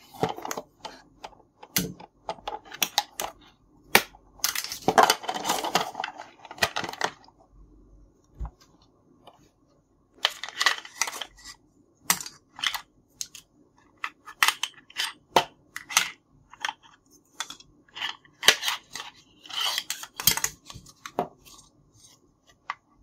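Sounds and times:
plastic toy pieces clattering: 4.4 - 7.2, 10.2 - 11.5.

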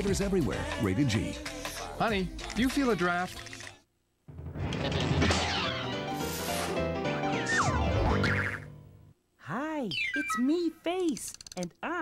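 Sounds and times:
cartoon sliding notes: 7.4 - 8.7, 9.9 - 10.6
children's tv music jingle: 9.6 - 11.2.

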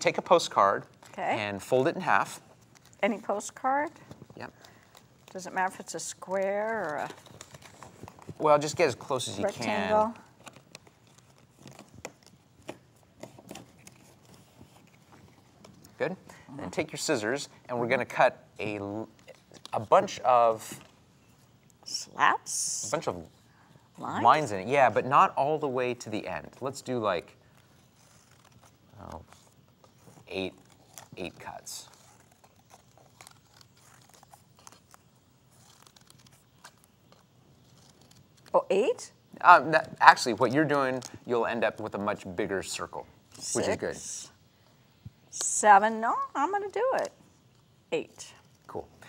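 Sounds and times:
card paper clicks and rustles: 3.9 - 16.0, 27.4 - 38.6.

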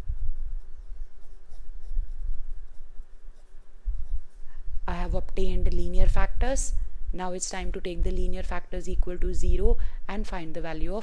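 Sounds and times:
pen scratching on paper: 0.0 - 5.4.

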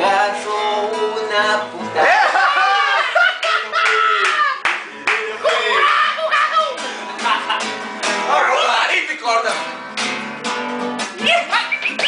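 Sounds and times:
men shouting and singing: 0.0 - 9.6
hand claps: 3.4 - 5.4, 11.0 - 12.0.

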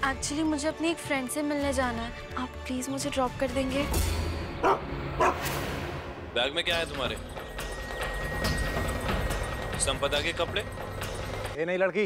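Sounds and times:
dog barking: 4.6 - 5.4.

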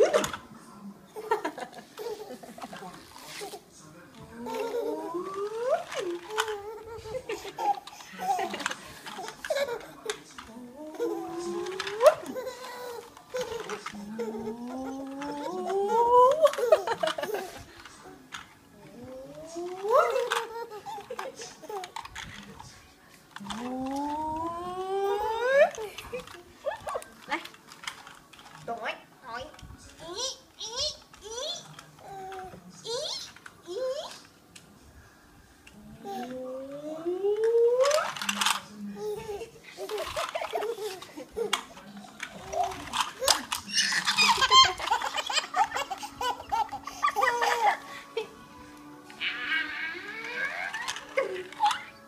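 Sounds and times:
baby laughing: 4.4 - 10.2, 10.9 - 17.6, 42.4 - 48.3
baby squealing and cooing: 43.7 - 47.6.

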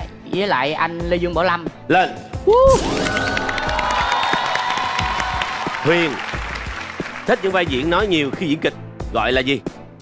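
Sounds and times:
game show music cue: 2.5 - 8.3
audience cheering and applause: 2.7 - 7.5.

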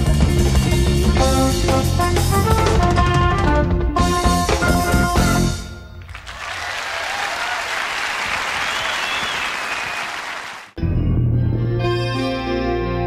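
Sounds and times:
jazz-fusion band playing: 0.0 - 5.8
audience applauding: 6.0 - 10.8.

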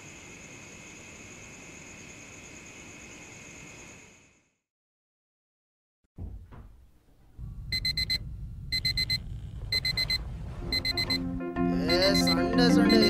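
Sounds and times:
phone alarm beeping: 7.7 - 11.2, 11.9 - 13.0
background music: 7.8 - 13.0.

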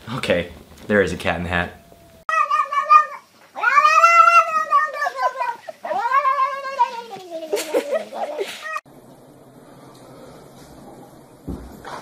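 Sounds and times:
cat meowing: 1.7 - 7.5.

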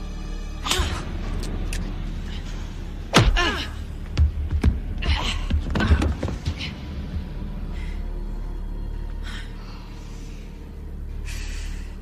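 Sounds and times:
punch and kick hits: 3.1 - 3.6.

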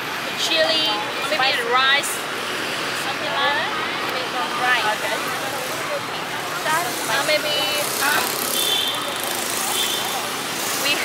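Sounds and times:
faint voices: 0.0 - 11.0
street traffic noise: 0.0 - 11.0.

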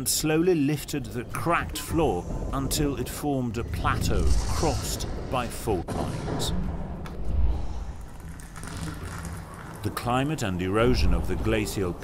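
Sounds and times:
deep ground rumble: 0.0 - 12.0
crackles of breaking rock: 7.9 - 10.4.

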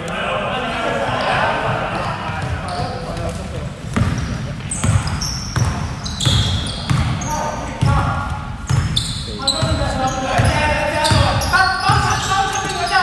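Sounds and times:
sneaker squeaks: 1.9 - 13.0
basketball bouncing on hardwood: 3.9 - 7.2.

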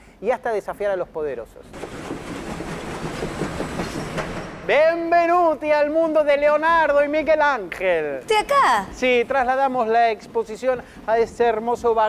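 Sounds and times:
train wheels rumbling on rails: 1.7 - 5.1.

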